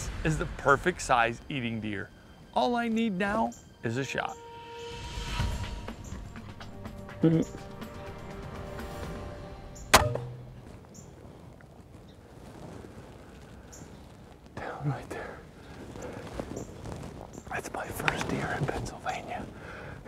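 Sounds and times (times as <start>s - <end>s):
crossbow shot crack: 9.9s - 10.6s
man whispering: 14.5s - 15.6s, 17.5s - 19.6s
man breathing hard: 19.5s - 20.0s.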